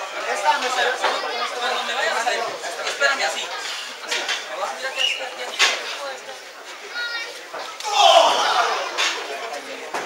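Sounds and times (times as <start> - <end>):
low crowd noise: 0.0 - 10.0.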